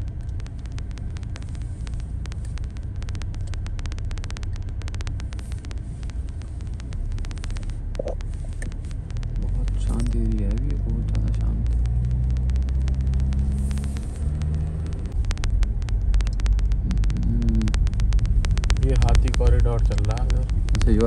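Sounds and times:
car engine and road noise: 0.0 - 21.0
rapid small clicks: 0.0 - 21.0.

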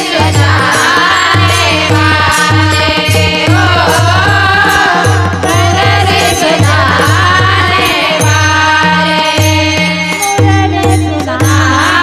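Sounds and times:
sharp percussion strokes: 0.0 - 12.0
woman singing: 0.0 - 12.0.

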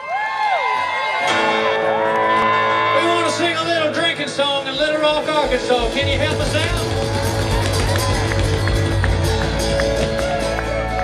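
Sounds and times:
crowd noise: 0.0 - 11.0
string band playing: 1.3 - 11.0
strummed rhythm: 1.3 - 11.0.

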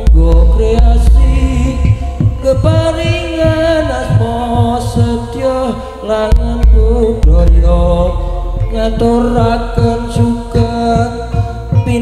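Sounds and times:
drum strokes: 0.0 - 5.5, 6.3 - 12.0
chanted vocal line: 0.0 - 12.0
metallophones and gongs ringing: 0.2 - 12.0.

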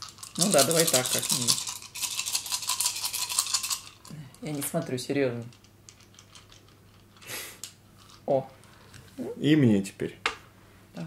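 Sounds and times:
tokens rattling in a bag: 0.0 - 4.8, 5.5 - 7.2.

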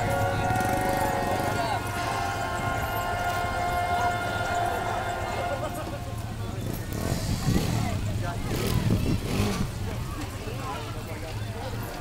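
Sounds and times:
siren at steady pitch: 0.0 - 6.2
vehicle engine rumble: 0.0 - 12.0.

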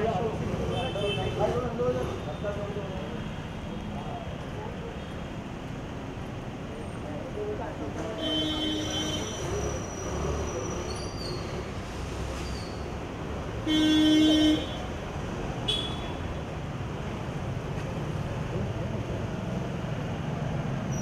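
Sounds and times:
street traffic noise: 0.0 - 21.0
car horns honking: 8.2 - 9.7, 13.6 - 14.9, 15.6 - 16.2.

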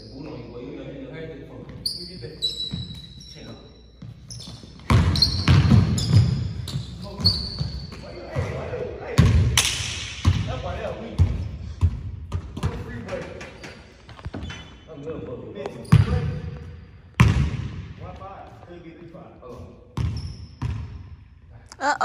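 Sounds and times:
sneaker squeaks: 1.6 - 8.6, 13.4 - 17.4, 19.5 - 20.9
basketball bouncing on hardwood floor: 4.4 - 7.8, 11.2 - 12.9, 17.2 - 17.6, 20.0 - 20.9.

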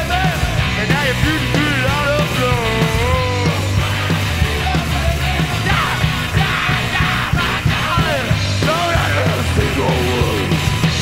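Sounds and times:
punk rock band playing: 0.0 - 11.0
yelled vocals: 0.0 - 11.0.

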